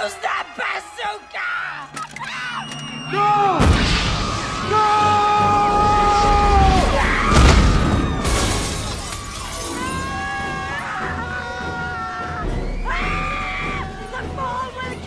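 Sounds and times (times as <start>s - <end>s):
soundtrack music: 0.0s - 15.0s
explosion blast with crash: 3.6s - 4.7s, 6.0s - 9.2s.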